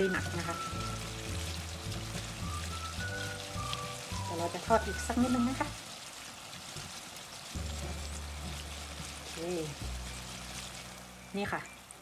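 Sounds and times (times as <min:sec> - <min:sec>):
soft background music: 0:00.0 - 0:05.9, 0:07.5 - 0:12.0
oil sizzling in a wok: 0:00.0 - 0:12.0
wire skimmer stirring in oil: 0:00.0 - 0:12.0.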